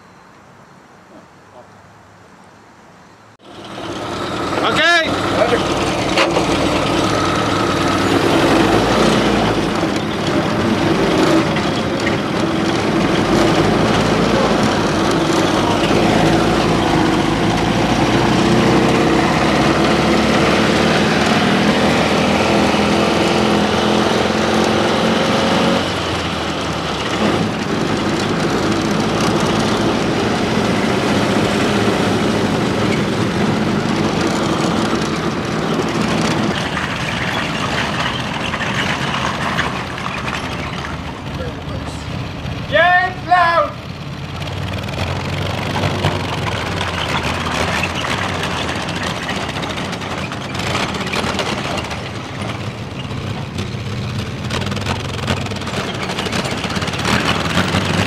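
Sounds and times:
tankette engine running: 3.4 - 58.0.

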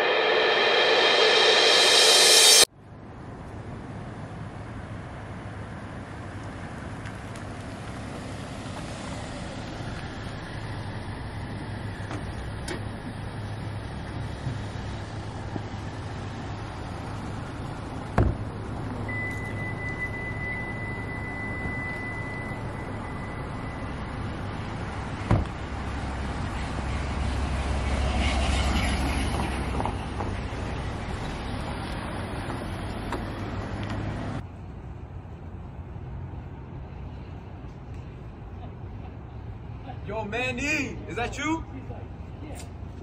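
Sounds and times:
low hum of traffic: 0.0 - 43.0
high-pitched electronic tone: 19.1 - 24.4
sharp thump: 25.2 - 25.6.

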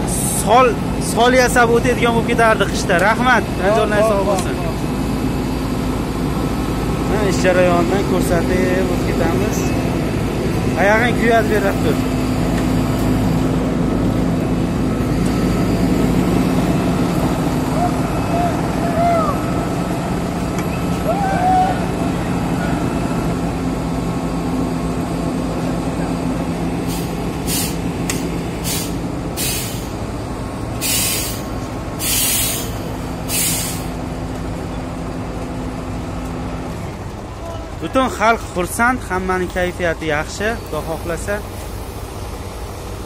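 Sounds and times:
diesel engine running: 0.0 - 43.0
short bursts of hiss or scraping: 30.8 - 33.9.

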